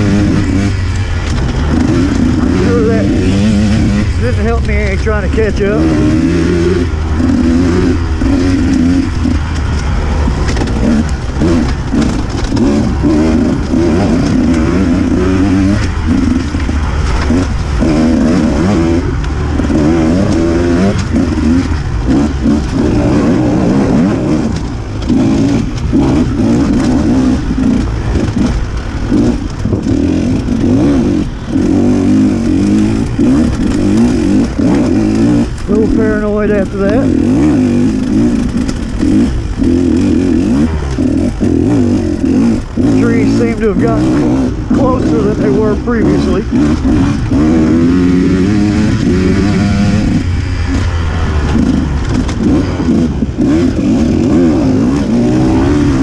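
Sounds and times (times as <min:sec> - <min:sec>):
dirt bike engine revving: 0:00.0 - 0:56.0.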